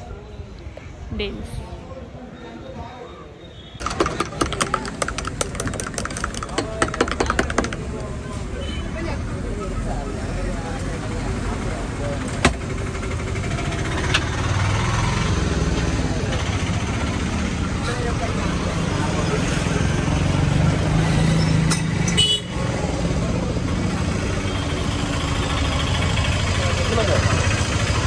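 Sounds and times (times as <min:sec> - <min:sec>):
vehicle engines running: 0:03.8 - 0:28.0
car horns: 0:22.1 - 0:22.7.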